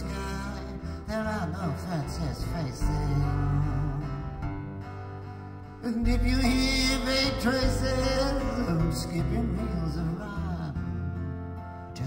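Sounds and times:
person singing: 0:00.0 - 0:04.7, 0:05.8 - 0:11.1.

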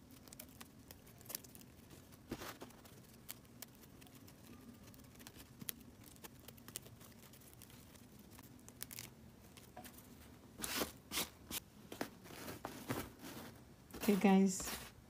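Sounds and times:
stiff fabric rustling and crackling: 0:04.8 - 0:15.0.

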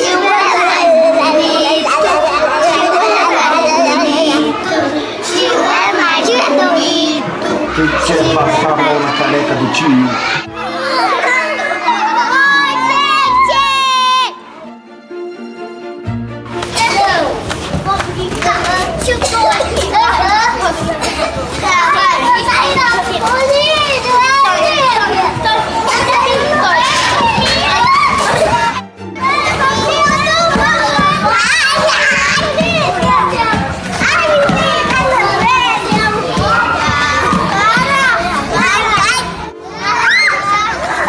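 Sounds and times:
young children chattering and squealing: 0:00.0 - 0:15.0, 0:16.6 - 0:41.0.

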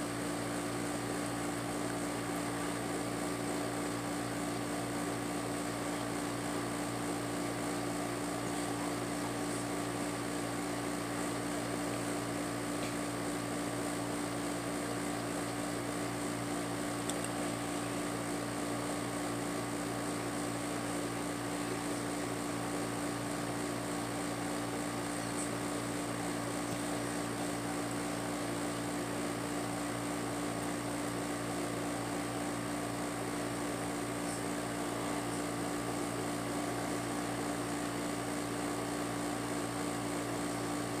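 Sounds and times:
electric fan whirring: 0:00.0 - 0:41.0.

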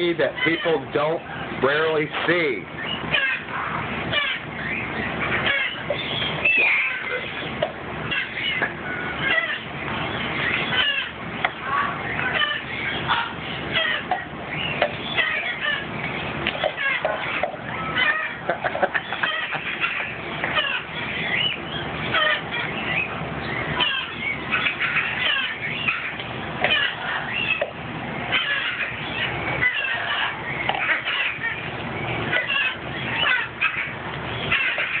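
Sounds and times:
parrot squeaky calls: 0:00.1 - 0:35.0.

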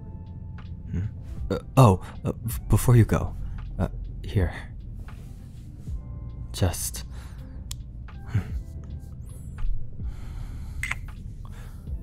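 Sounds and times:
soft lo-fi music: 0:00.0 - 0:12.0
close breath sounds: 0:07.0 - 0:12.0.

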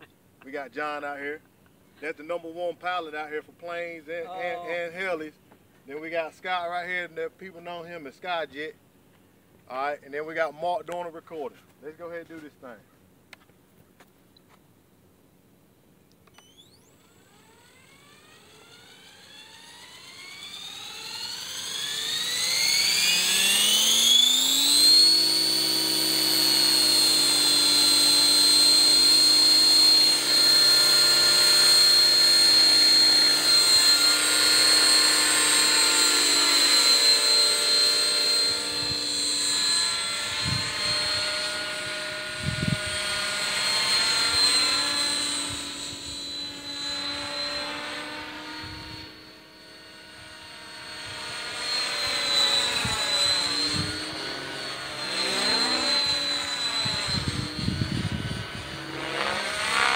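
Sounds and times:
electric rc helicopter whine: 0:00.0 - 0:05.4, 0:06.0 - 0:08.8, 0:16.2 - 0:59.9.

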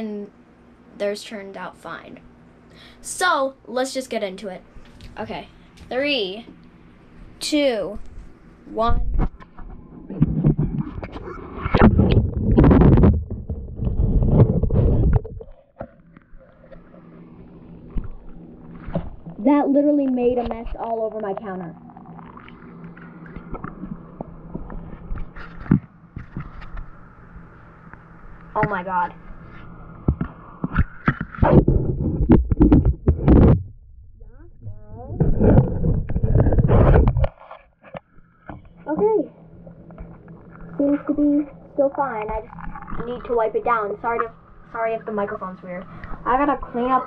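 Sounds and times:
faint low rumble: 0:16.1 - 0:37.4, 0:38.1 - 0:47.0.

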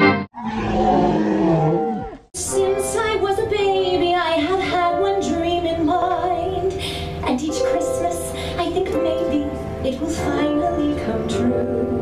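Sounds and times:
orchestral fanfare music: 0:00.0 - 0:00.3
animal roar falling in pitch: 0:00.4 - 0:02.3.

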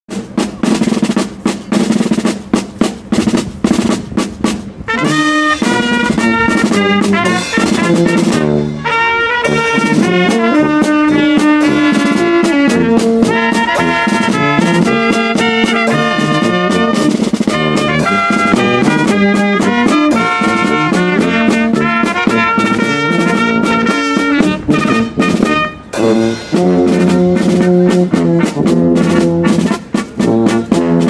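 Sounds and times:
drum beating: 0:00.1 - 0:31.0
trumpets playing melody: 0:00.1 - 0:31.0
tuba bass notes: 0:00.1 - 0:31.0.

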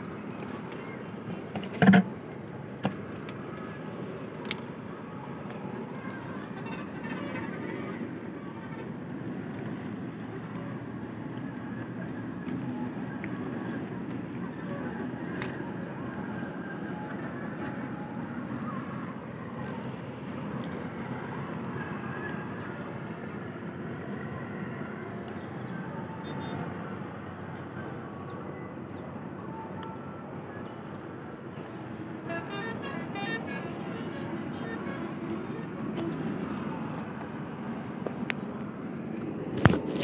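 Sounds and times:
distant road traffic rumble: 0:00.0 - 0:40.0
horn-like tones: 0:32.2 - 0:37.1.

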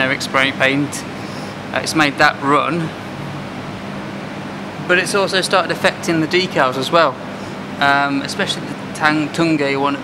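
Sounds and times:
man speaking: 0:00.0 - 0:01.1, 0:01.7 - 0:03.0, 0:04.9 - 0:07.2, 0:07.8 - 0:10.0
steady background hiss: 0:00.0 - 0:10.0.

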